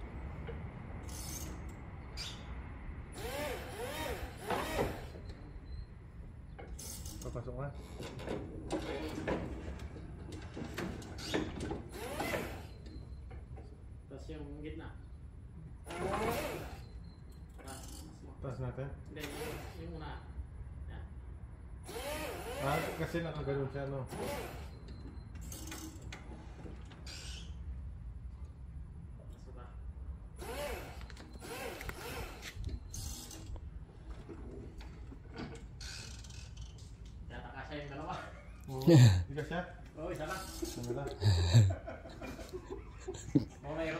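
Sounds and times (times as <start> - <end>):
mechanical squeaks and creaks: 1.0 - 2.5, 3.2 - 13.7, 15.9 - 18.3, 24.1 - 27.7, 30.4 - 37.1, 40.2 - 41.0.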